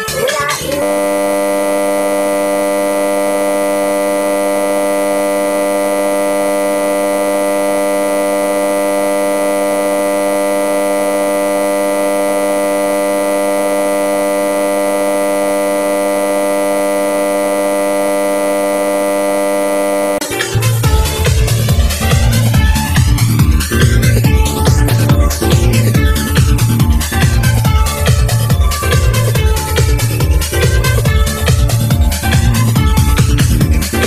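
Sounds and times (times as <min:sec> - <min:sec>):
dance music with heavy bass beat: 0:00.0 - 0:34.0
steady electronic drone chord: 0:00.0 - 0:34.0.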